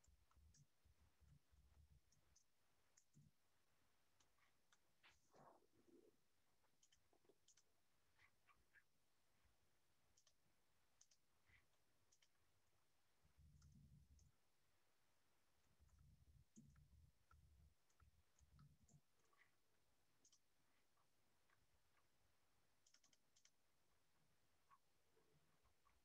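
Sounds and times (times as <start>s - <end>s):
computer keyboard typing clicks: 6.8s - 7.7s, 10.1s - 10.4s, 11.0s - 11.2s, 22.8s - 23.6s.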